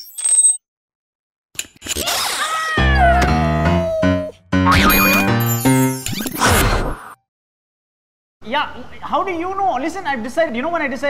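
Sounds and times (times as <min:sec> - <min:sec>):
playful music jingle: 0:03.2 - 0:06.1.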